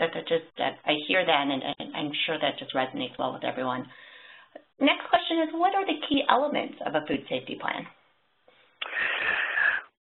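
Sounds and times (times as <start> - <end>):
breath into microphone: 3.9 - 4.6, 8.5 - 9.9.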